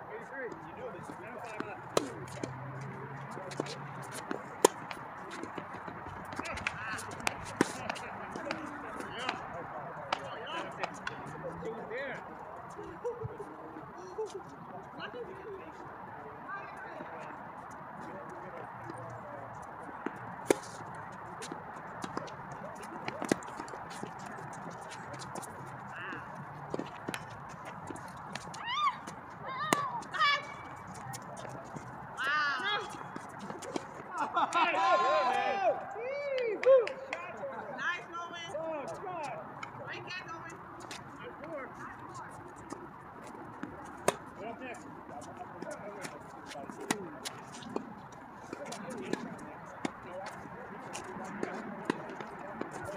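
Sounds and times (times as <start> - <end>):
tennis balls hit by rackets: 1.1 - 11.4, 19.6 - 34.6, 38.8 - 52.9
people calling out: 28.6 - 30.8, 34.1 - 39.2.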